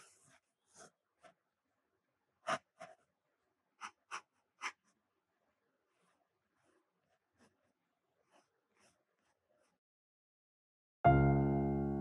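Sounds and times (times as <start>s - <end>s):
pencil strokes on paper: 0.0s - 1.4s, 5.8s - 9.8s.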